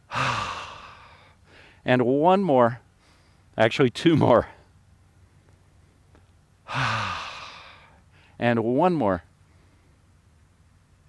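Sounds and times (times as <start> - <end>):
man sighing: 0.0 - 1.8, 6.6 - 8.3.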